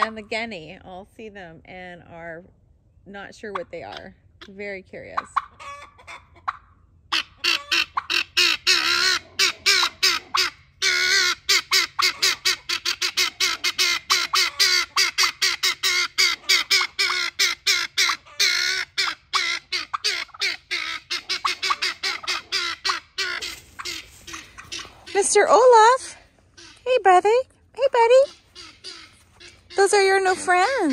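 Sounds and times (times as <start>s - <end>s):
guineafowl alarm calls: 5.2s - 27.1s, 28.2s - 30.9s.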